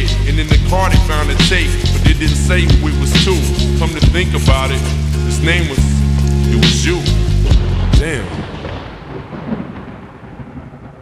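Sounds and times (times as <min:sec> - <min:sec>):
thunder rumbling: 0:03.8 - 0:11.0
rain falling: 0:06.2 - 0:11.0.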